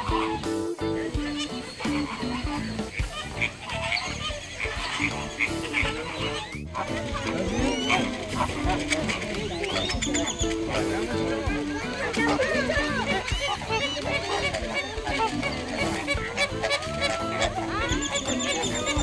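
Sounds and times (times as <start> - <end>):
background music with held notes: 0.0 - 19.0
flamingos calling: 0.0 - 19.0.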